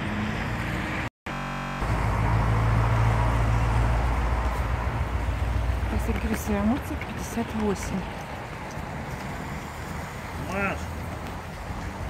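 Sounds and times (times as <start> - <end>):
low street rumble: 0.0 - 12.0.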